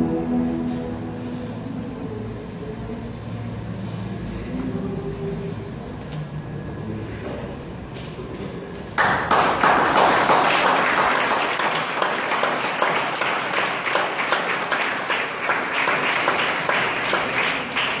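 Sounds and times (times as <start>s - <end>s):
audience applause: 9.0s - 18.0s.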